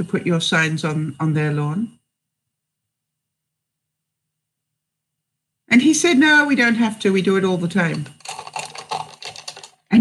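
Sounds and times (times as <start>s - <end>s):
computer keyboard typing: 7.9s - 9.9s.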